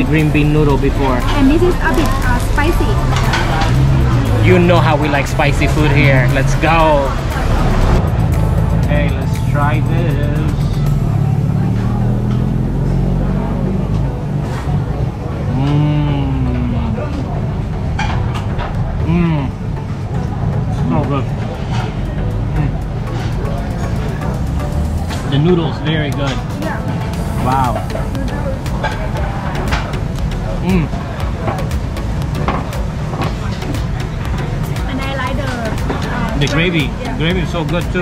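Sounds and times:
background chatter: 0.0 - 38.0
low traffic rumble: 0.0 - 38.0
man humming mmm while tasting: 15.5 - 16.9.

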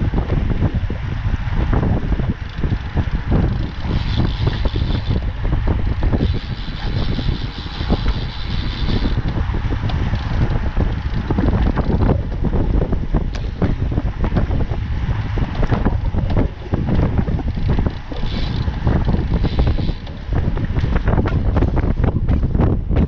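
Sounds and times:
tyres rumbling on asphalt: 0.0 - 23.0
wind buffeting microphone: 0.0 - 23.0.

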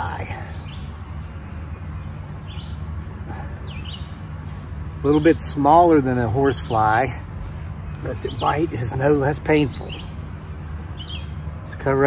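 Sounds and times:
bird chirping: 0.0 - 11.5
steady low hum: 0.0 - 12.0.

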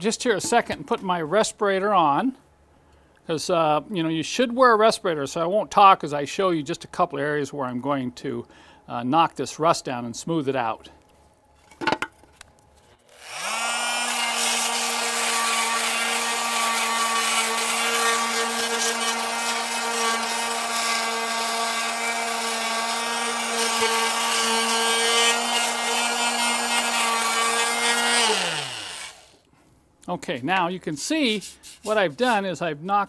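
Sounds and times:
oscillating multi-tool motor hum: 13.1 - 29.4
sanding pad rasping on metal: 13.2 - 29.2, 31.2 - 32.4.

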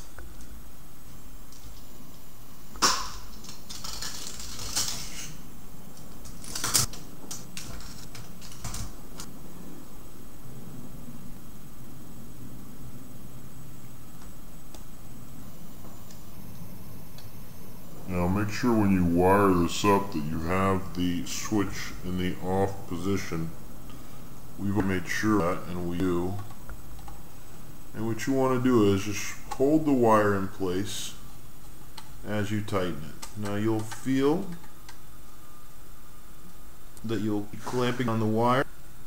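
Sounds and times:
wire clicks and rustles: 0.0 - 9.8, 19.8 - 35.4, 36.4 - 38.4
low background hum: 0.0 - 39.0.

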